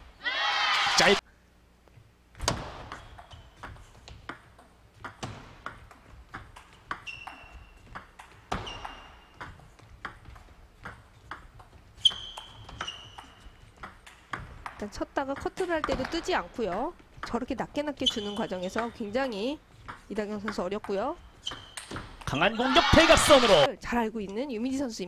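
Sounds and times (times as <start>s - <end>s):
table tennis ball hits: 2.4s - 14.8s
short high squeaks: 12.0s - 13.5s, 18.0s - 18.6s, 21.4s - 21.9s.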